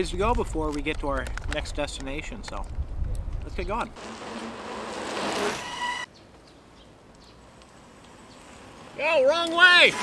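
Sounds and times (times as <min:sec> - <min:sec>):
bicycles rolling on asphalt: 0:04.0 - 0:06.0, 0:07.1 - 0:10.0.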